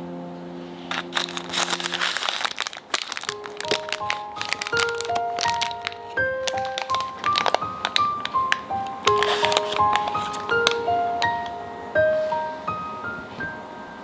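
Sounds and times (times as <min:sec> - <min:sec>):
background music: 0:00.0 - 0:14.0
baking paper crinkling: 0:00.9 - 0:10.9.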